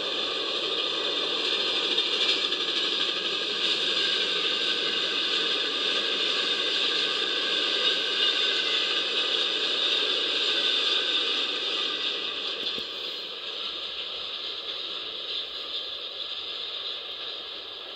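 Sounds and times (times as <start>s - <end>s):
hiss: 0.0s - 17.9s
train rolling over steel bridge: 0.0s - 17.9s.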